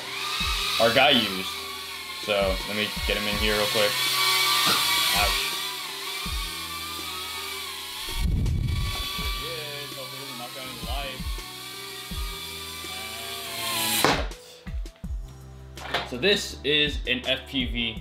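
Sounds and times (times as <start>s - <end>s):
drone propeller whine: 0.0s - 13.5s.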